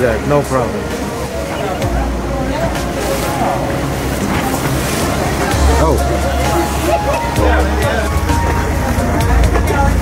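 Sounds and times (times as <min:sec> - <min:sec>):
boat engine rumble: 0:00.0 - 0:10.0
hull cutting through water: 0:00.0 - 0:10.0
spray splashing: 0:00.8 - 0:09.9.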